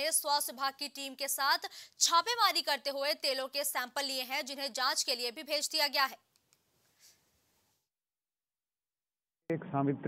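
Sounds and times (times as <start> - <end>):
woman speaking: 0.0 - 6.2.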